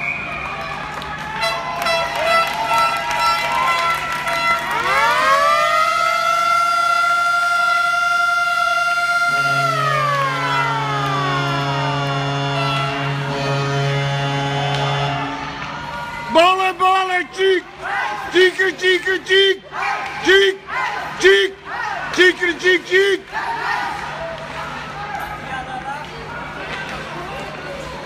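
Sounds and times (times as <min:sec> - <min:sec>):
siren wailing: 0:03.4 - 0:16.0
low steady drone: 0:04.8 - 0:16.4
mixed tones and clicks: 0:09.3 - 0:15.5.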